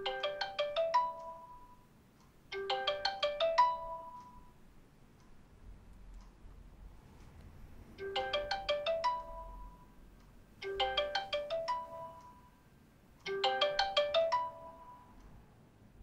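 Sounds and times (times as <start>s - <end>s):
phone ringtone chiming notes: 0.0s - 1.8s, 2.5s - 4.6s, 8.0s - 10.0s, 10.6s - 12.6s, 13.3s - 15.2s.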